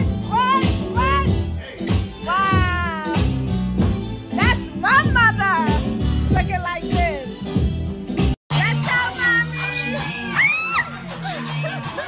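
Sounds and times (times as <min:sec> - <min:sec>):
music with beat and bass: 0:00.0 - 0:12.0.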